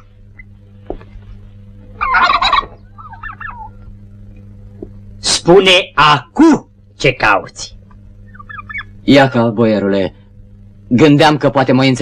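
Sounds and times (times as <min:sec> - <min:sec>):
faint low hum: 0:00.0 - 0:12.0
turkey gobbling: 0:02.0 - 0:03.8, 0:08.3 - 0:08.9.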